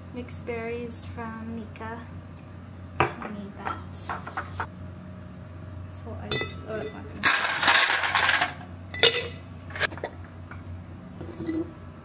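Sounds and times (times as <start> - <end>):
kitchenware clinking on a countertop: 6.3 - 10.1.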